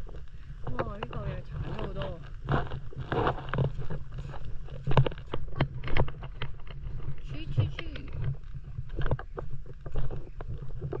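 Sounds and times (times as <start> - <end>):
steady low rumble: 0.0 - 11.0
footsteps knocking on rocks: 0.6 - 11.0.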